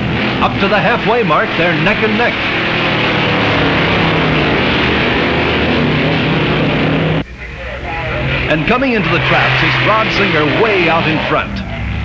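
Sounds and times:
drag racing car engines roaring: 0.0 - 12.0.

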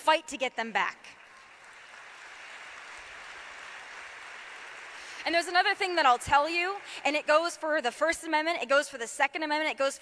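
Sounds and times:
audience applause: 1.2 - 7.5.

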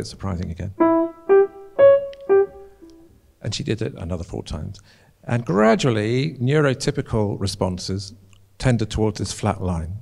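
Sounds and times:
grand piano melody: 0.8 - 3.1.

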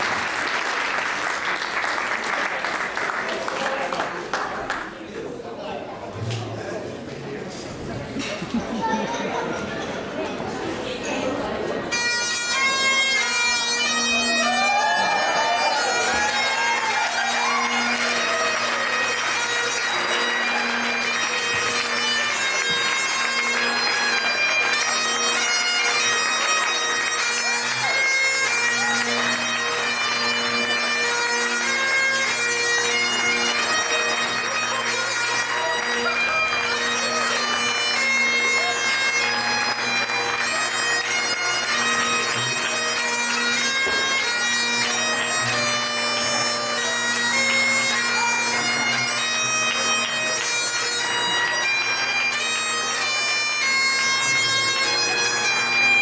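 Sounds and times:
bagpipes playing: 11.9 - 56.0.

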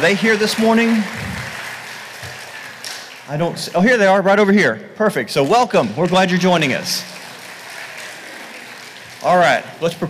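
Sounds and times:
congregation applauding: 0.0 - 4.0, 5.4 - 10.0.

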